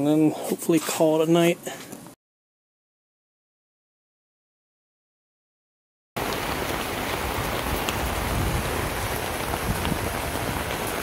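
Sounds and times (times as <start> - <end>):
heavy rain pouring: 6.2 - 11.0.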